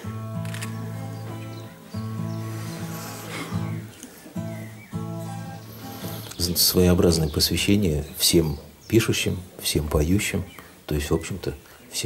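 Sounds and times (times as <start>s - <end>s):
acoustic guitar chords ringing: 0.0s - 6.3s.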